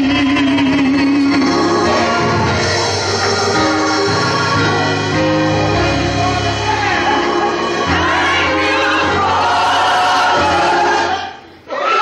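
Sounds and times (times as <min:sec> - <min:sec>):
gospel choir singing: 0:00.0 - 0:12.0
woman leading singing: 0:03.1 - 0:11.2.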